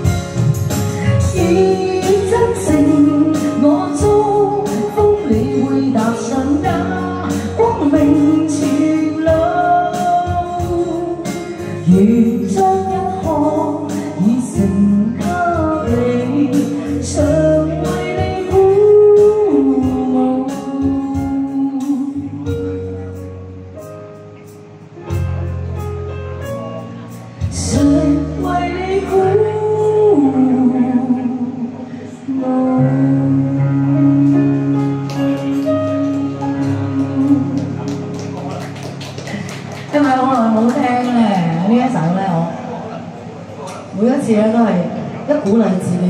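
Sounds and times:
woman singing ballad: 0:00.0 - 0:23.2, 0:27.4 - 0:38.1, 0:39.6 - 0:42.8
electric keyboard with steady beat: 0:00.0 - 0:44.3.

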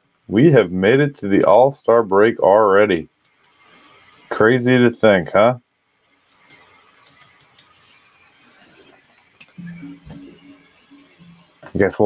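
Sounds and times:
faint room hiss: 0:00.0 - 0:12.0
light sharp clicks: 0:03.2 - 0:03.6.

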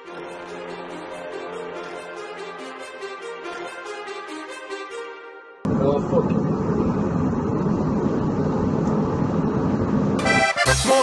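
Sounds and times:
airliner cabin rumble: 0:05.7 - 0:10.3.

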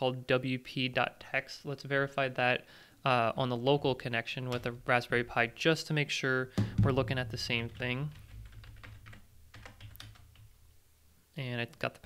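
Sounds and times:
keyboard clicks: 0:07.7 - 0:10.5.

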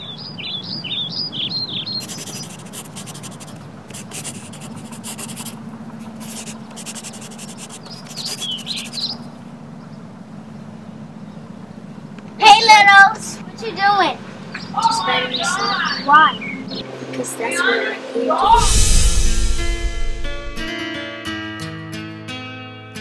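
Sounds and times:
small bird chirping: 0:00.0 - 0:03.6, 0:06.6 - 0:09.2
pencil writing on paper: 0:02.0 - 0:09.0.

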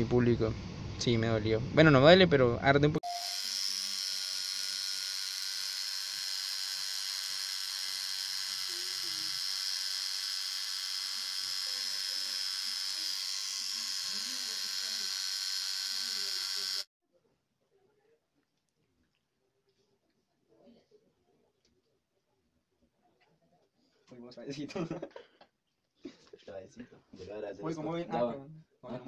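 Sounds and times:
tattoo machine buzzing: 0:03.0 - 0:16.9.

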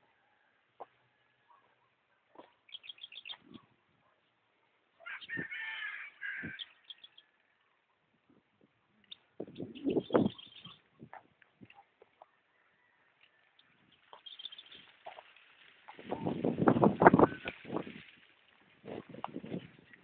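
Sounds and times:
birds chirping: 0:01.5 - 0:04.4, 0:05.0 - 0:08.0, 0:08.9 - 0:17.8.

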